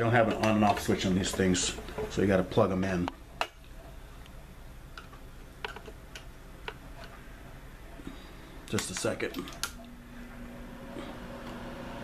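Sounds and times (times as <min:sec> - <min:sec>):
dehydrator fan humming: 0:00.0 - 0:12.0.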